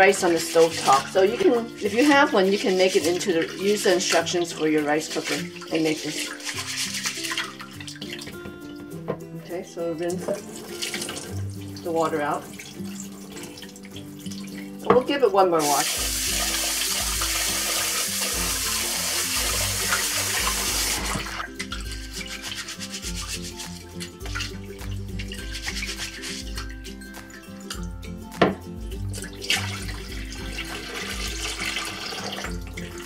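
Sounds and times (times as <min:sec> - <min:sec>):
water pouring out: 0:00.0 - 0:08.4, 0:10.3 - 0:14.8, 0:15.6 - 0:26.9, 0:29.1 - 0:33.0
tap water running into a pot: 0:00.0 - 0:09.0, 0:09.9 - 0:28.0, 0:29.0 - 0:33.0
background music: 0:00.0 - 0:33.0
hands swishing rice in water: 0:00.2 - 0:08.3, 0:15.6 - 0:27.4.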